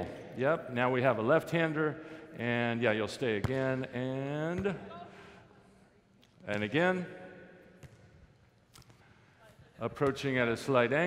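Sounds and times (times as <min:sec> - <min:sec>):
low hum of hall: 0:00.0 - 0:11.0.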